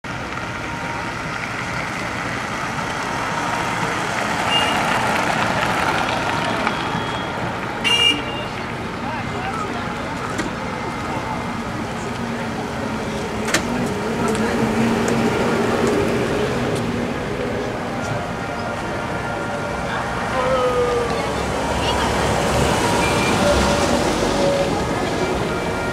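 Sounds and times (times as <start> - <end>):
trolleybus low hum: 0.1 - 25.9
trolleybuses rolling past: 0.1 - 25.9
crowd chatting: 0.3 - 25.9.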